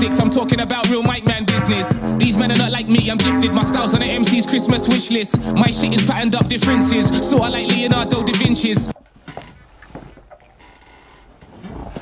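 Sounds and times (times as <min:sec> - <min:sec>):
heavy breathing: 0:05.3 - 0:05.7
rustling and knocking of movement: 0:09.0 - 0:12.0.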